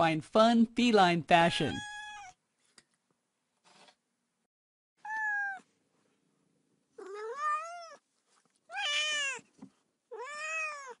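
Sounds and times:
cat meowing: 1.7 - 2.4, 5.0 - 5.7, 7.0 - 8.0, 8.7 - 9.5, 10.1 - 11.0.

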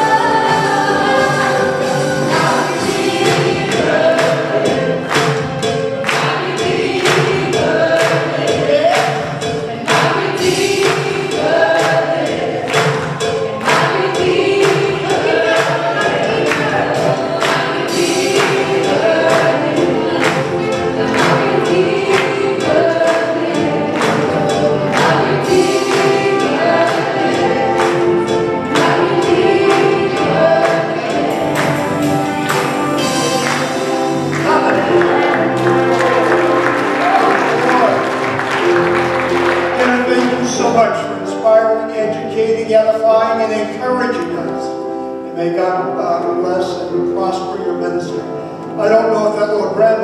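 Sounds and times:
percussion hits: 0.0 - 41.2
group singing gospel song: 0.0 - 42.4
keyboards: 0.0 - 50.0.

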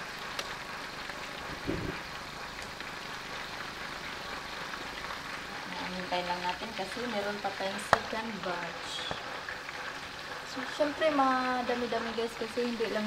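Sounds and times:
fish sizzling in hot oil: 0.0 - 13.0
low thump: 1.6 - 2.0.

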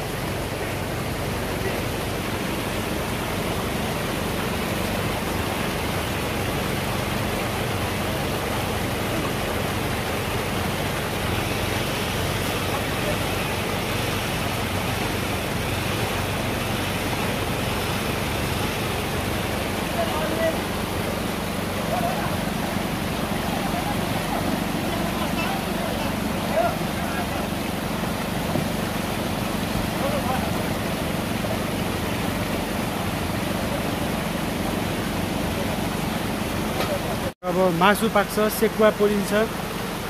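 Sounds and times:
water rushing in a stream: 0.0 - 40.0.

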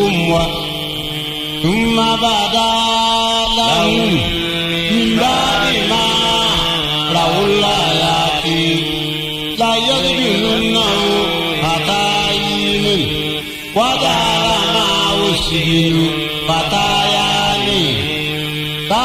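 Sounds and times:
person chanting recitation: 0.0 - 19.0.

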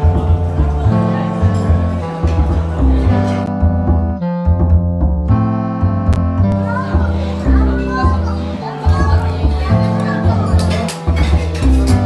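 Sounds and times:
background music with bass line: 0.0 - 12.0
children's voices: 6.6 - 11.0.

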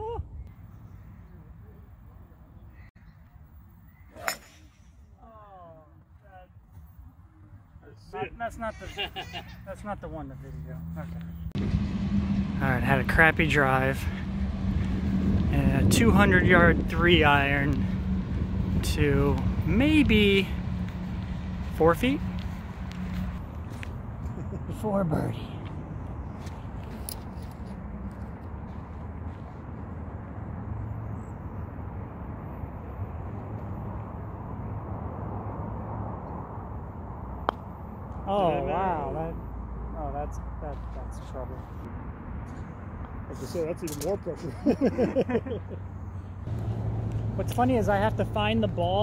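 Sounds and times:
low outdoor rumble: 8.0 - 49.0.

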